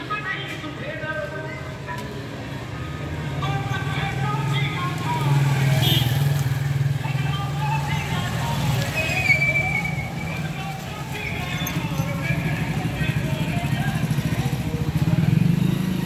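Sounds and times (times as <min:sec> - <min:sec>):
street noise: 0:00.0 - 0:16.0
background voices: 0:06.7 - 0:15.4
vehicle engine running: 0:10.0 - 0:16.0.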